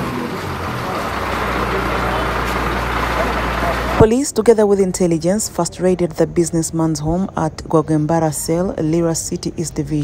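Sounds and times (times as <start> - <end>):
diesel engine humming: 0.0 - 10.0
people chattering: 0.0 - 10.0.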